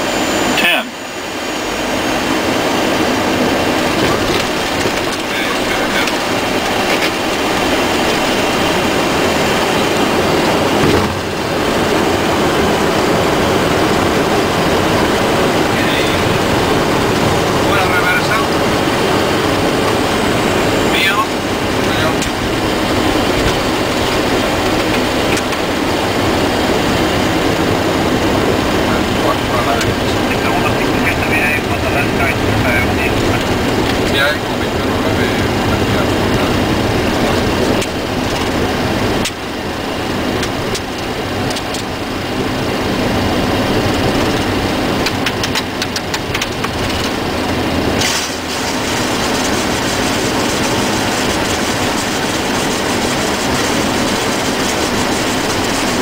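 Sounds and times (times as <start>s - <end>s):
jet engines and airflow: 0.0s - 56.0s.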